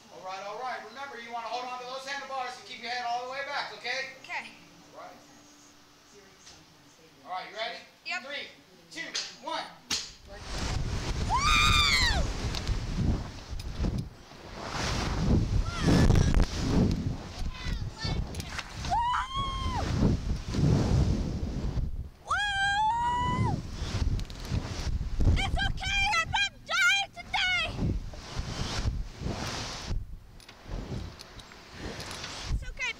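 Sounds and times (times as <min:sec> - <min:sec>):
wind buffeting microphone: 0:10.3 - 0:32.9
riders screaming: 0:11.3 - 0:12.3, 0:18.8 - 0:19.9, 0:22.2 - 0:23.6.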